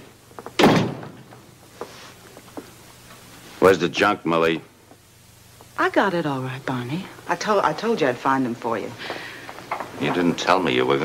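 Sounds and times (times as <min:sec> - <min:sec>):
door banging shut: 0:00.6 - 0:01.3
faint knocks: 0:09.1 - 0:10.4.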